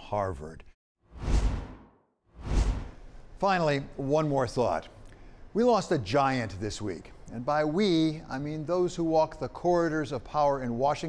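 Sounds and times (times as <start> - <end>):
whoosh sound effects: 1.1 - 3.1.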